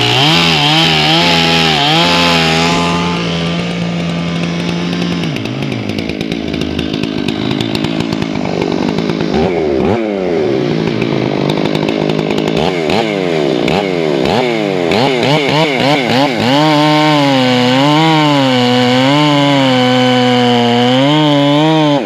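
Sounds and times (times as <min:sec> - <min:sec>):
chainsaw revving: 0:00.0 - 0:22.0.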